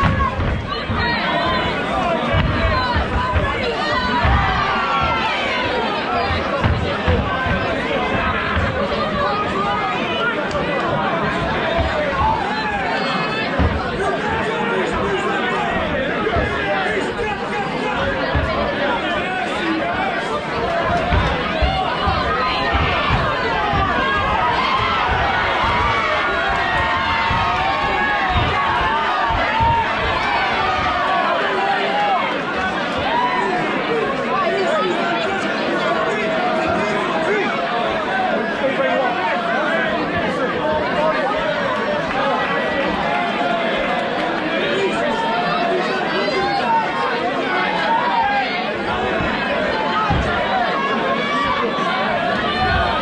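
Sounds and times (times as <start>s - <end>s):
crowd shouting and chattering: 0.0s - 53.0s
dull low thuds: 20.6s - 31.1s.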